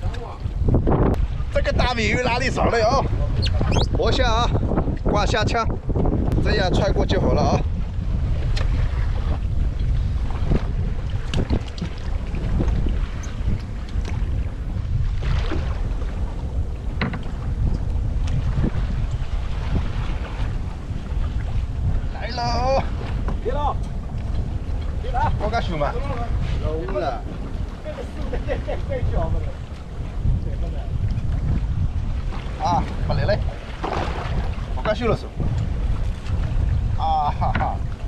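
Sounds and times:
wind buffeting microphone: 0.0 - 38.0.

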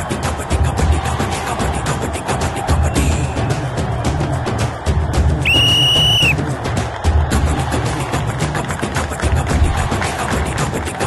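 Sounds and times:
background music with steady beat: 0.0 - 11.0
referee's whistle blast: 5.5 - 6.4.

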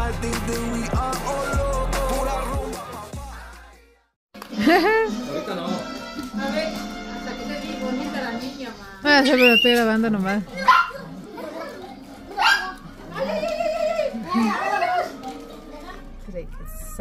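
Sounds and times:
children shouting and squealing: 10.5 - 17.0.

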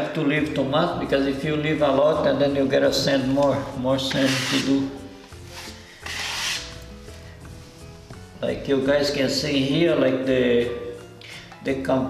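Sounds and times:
knife scraping wooden floor: 4.0 - 7.8.

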